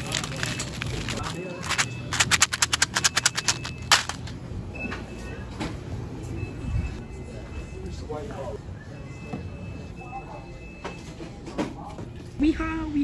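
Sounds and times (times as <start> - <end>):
plastic candy wrappers crinkling: 0.0 - 4.3.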